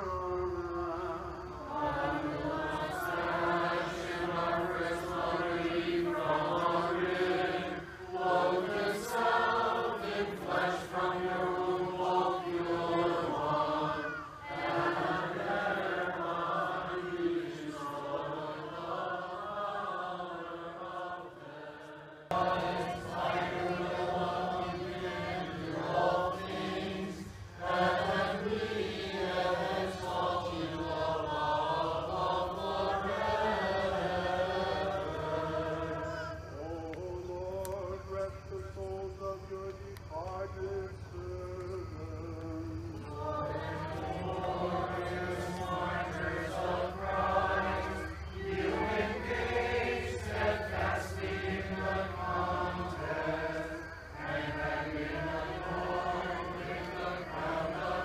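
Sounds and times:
unaccompanied choral chant: 0:00.0 - 0:58.0.

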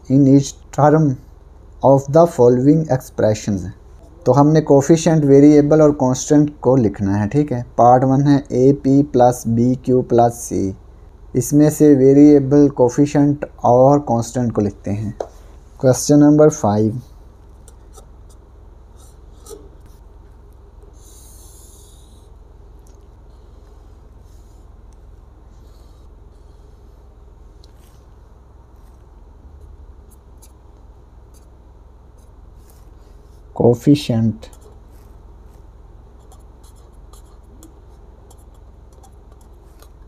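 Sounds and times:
steady low hum: 0:00.0 - 0:40.0
marker writing on paper: 0:17.5 - 0:20.1, 0:25.5 - 0:26.8, 0:28.7 - 0:30.6, 0:31.3 - 0:31.5, 0:32.2 - 0:33.5, 0:34.4 - 0:40.0.

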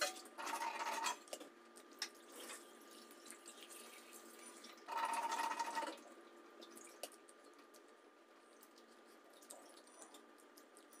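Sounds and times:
wet chewing: 0:06.6 - 0:11.0.

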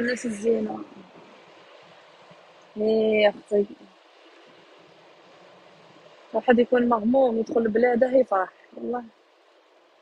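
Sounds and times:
faint low background noise: 0:00.0 - 0:10.0.

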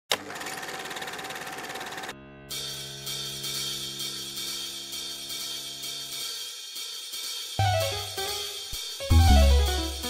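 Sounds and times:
movie camera running: 0:00.1 - 0:02.2.

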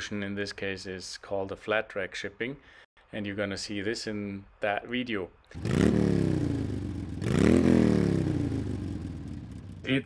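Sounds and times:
engine revving: 0:05.5 - 0:10.0.

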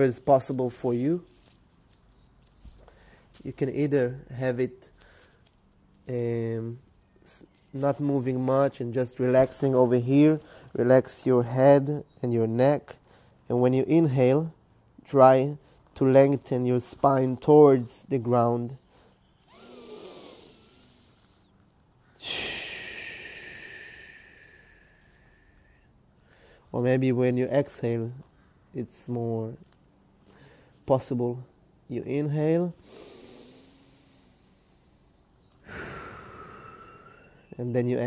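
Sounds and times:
man breathing deeply: 0:18.9 - 0:26.7, 0:32.8 - 0:37.5
man inhaling slowly: 0:18.9 - 0:26.7, 0:32.8 - 0:37.5.

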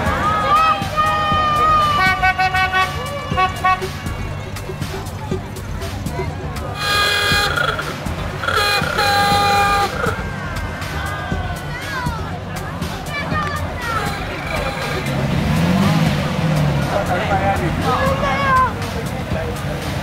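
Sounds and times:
crowd chatter: 0:00.0 - 0:20.0
car horns tooting: 0:00.8 - 0:05.2, 0:06.7 - 0:11.0, 0:13.5 - 0:16.2.

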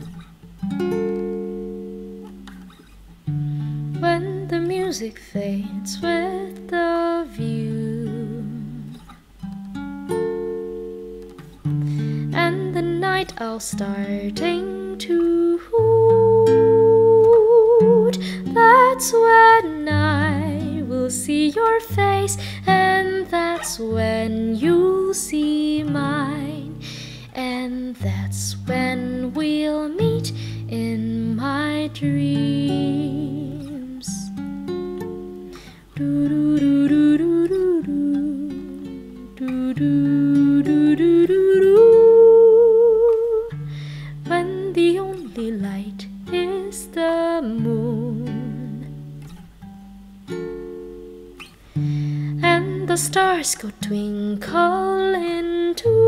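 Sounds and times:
plucked string instrument notes: 0:00.0 - 0:26.8
plucked acoustic guitar: 0:00.0 - 0:56.0.

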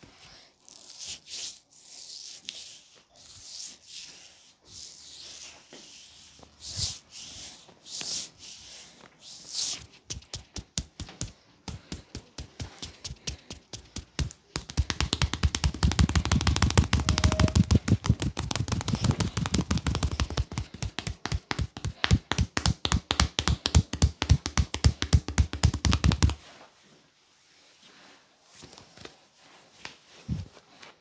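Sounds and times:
hand massage strikes on body: 0:10.1 - 0:26.4.

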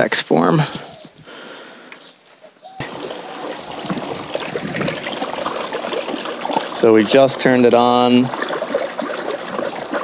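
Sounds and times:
water splashing and gurgling: 0:02.8 - 0:10.0.

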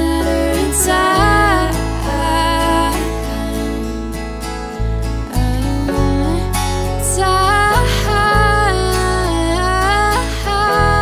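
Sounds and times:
strummed acoustic guitars: 0:00.0 - 0:11.0
sustained bass note: 0:00.0 - 0:11.0.

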